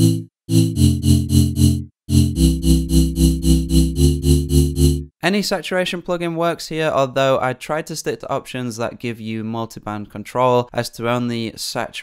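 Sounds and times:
synth chord stabs: 0.0 - 5.1.

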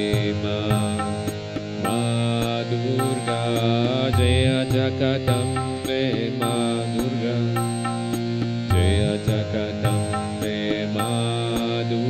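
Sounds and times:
person chanting a melody: 0.0 - 8.1, 8.7 - 12.0
harmonium chord: 0.0 - 12.0.

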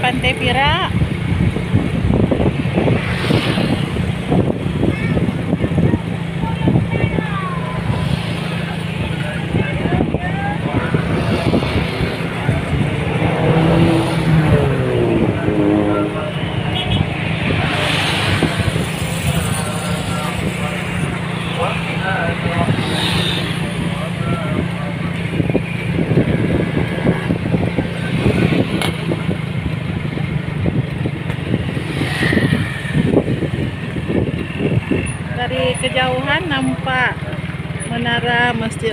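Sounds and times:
cars passing: 0.0 - 38.9
motorcycles passing: 0.0 - 38.9
indistinct voices: 3.7 - 30.2.

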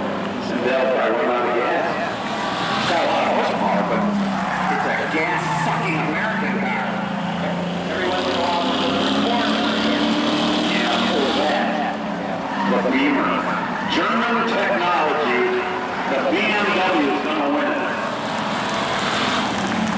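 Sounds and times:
race car engines revving: 0.0 - 19.9
tires squealing: 0.5 - 19.9.

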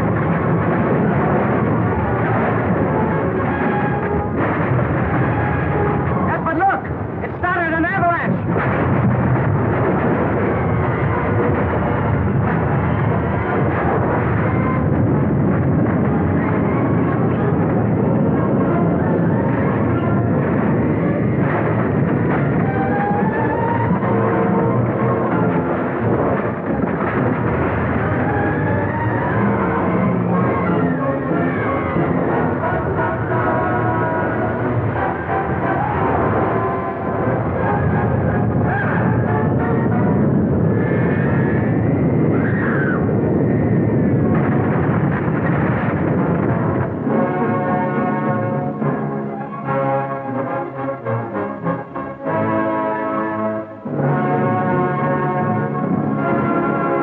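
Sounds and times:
dramatic orchestral music: 0.0 - 40.6, 45.4 - 57.0
avalanche rumbling: 0.0 - 57.0.

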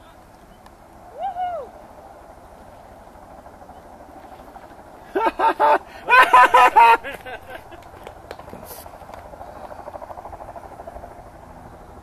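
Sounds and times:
vocal whoop: 1.1 - 1.8
people laughing: 5.1 - 8.0.

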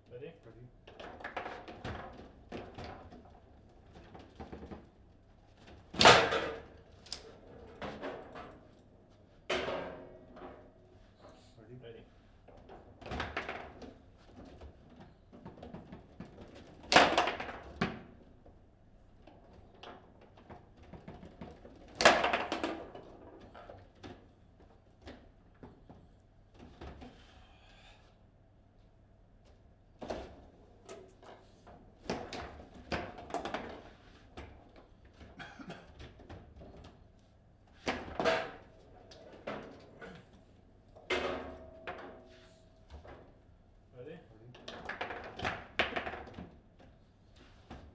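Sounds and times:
foosball clacks and thuds: 0.8 - 8.8, 12.4 - 18.4, 19.3 - 27.1, 30.0 - 37.1, 37.7 - 43.4, 44.5 - 47.9.

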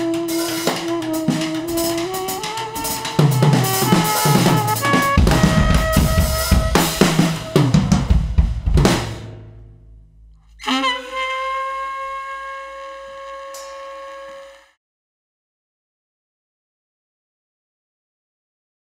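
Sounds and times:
long held note: 0.0 - 8.0, 10.6 - 14.8
saxophone notes: 0.0 - 8.0, 10.6 - 14.8
drum kit playing: 0.0 - 11.2.

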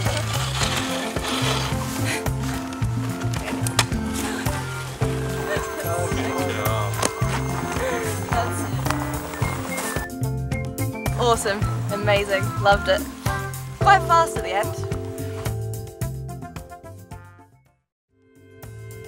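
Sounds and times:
background music with bass line: 0.0 - 19.0.

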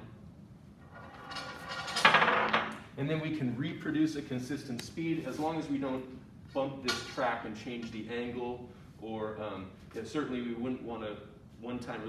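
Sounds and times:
ball rolling on metal track: 0.8 - 2.7.

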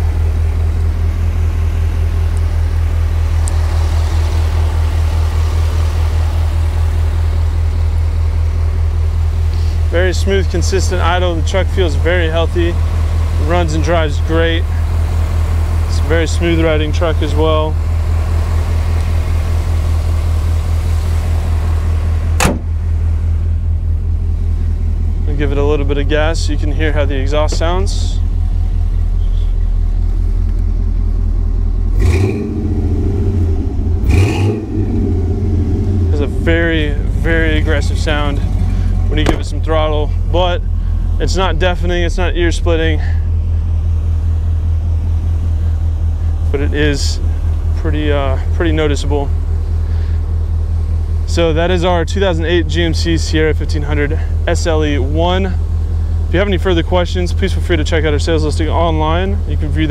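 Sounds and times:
truck engine idling: 0.0 - 59.9
sharp knock: 22.4 - 22.7, 39.2 - 39.5.

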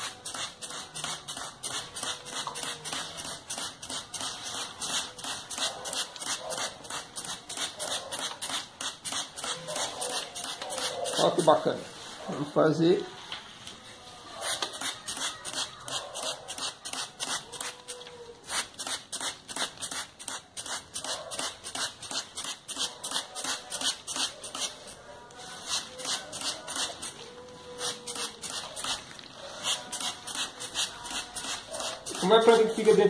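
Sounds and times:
spray bottle hissing: 0.0 - 11.4, 14.4 - 25.0, 25.6 - 33.0.

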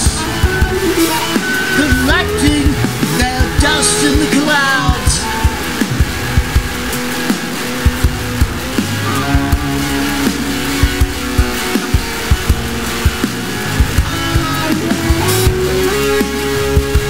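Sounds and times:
bass guitar: 0.0 - 17.0
distorted electric guitar: 0.0 - 17.0
drums keeping a steady beat: 0.0 - 17.0.

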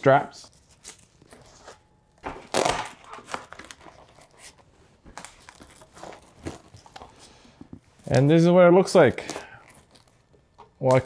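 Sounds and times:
velcro ripping: 2.4 - 4.6.

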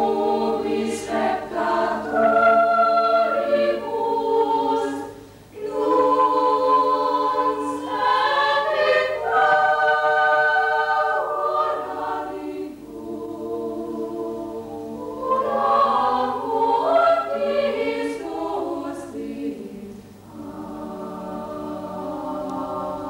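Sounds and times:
choir singing a cappella: 0.0 - 23.0.

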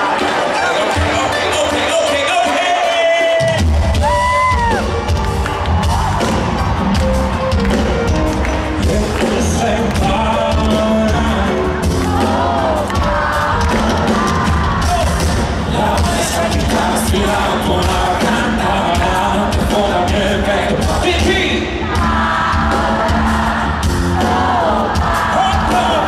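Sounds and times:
crowd cheering: 0.0 - 26.0
live pop band playing: 0.0 - 26.0.

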